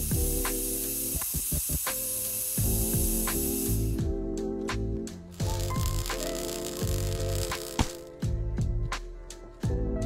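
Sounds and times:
capacitor hissing: 0.0s - 4.1s, 5.1s - 8.2s
background music with bass beat: 0.0s - 10.0s.

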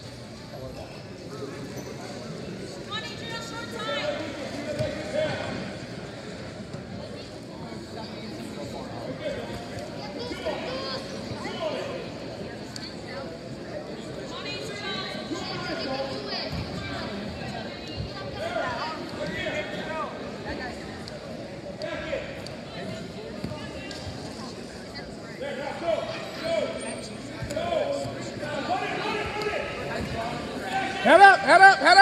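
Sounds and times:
voices echoing in gymnasium: 0.0s - 32.0s.

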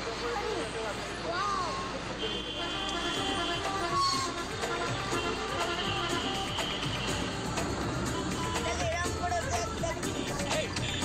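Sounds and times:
city traffic: 0.0s - 11.0s
music: 3.1s - 11.0s
voices in car: 8.1s - 11.0s.

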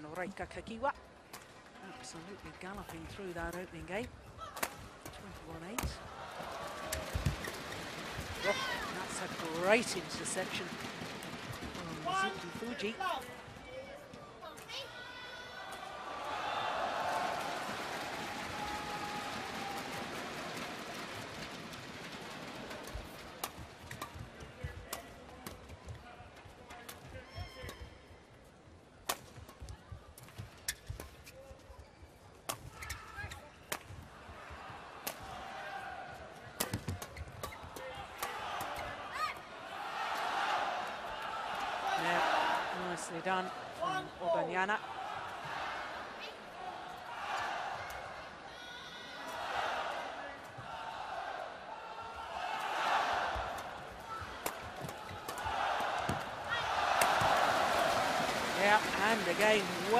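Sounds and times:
crowd cheering and applause: 6.0s - 12.6s, 15.7s - 23.2s, 49.2s - 59.9s
rackets striking shuttlecock: 53.4s - 56.3s, 56.9s - 57.4s.

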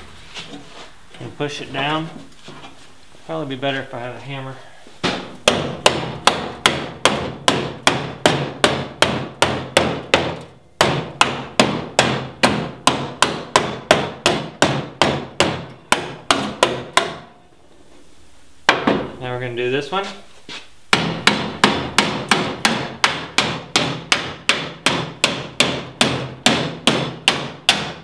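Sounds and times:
hammer striking sheet metal: 20.9s - 28.0s.

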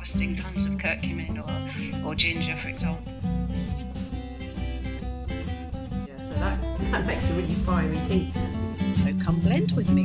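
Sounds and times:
strummed acoustic guitar music: 0.0s - 10.0s.

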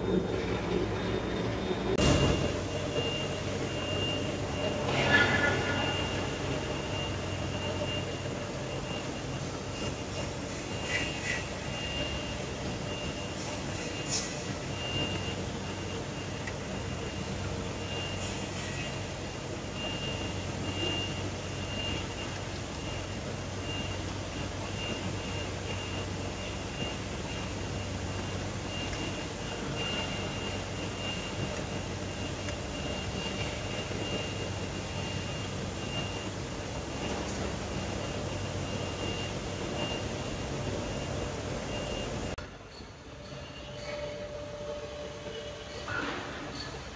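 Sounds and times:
machinery humming: 0.0s - 46.9s
faint high beeps: 2.0s - 46.9s.

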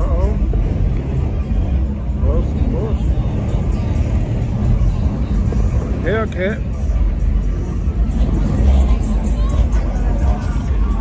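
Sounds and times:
car engine deep rumble: 0.0s - 11.0s.

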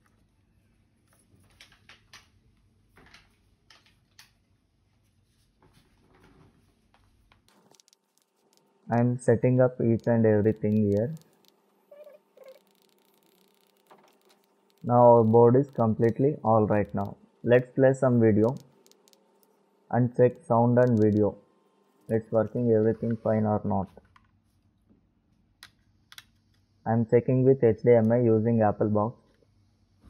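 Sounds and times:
faint steady hum: 0.0s - 30.0s
man speaking: 8.9s - 11.2s, 14.8s - 18.6s, 19.9s - 21.4s, 22.1s - 24.0s, 26.9s - 29.2s
faint pitched cries: 11.9s - 12.8s.

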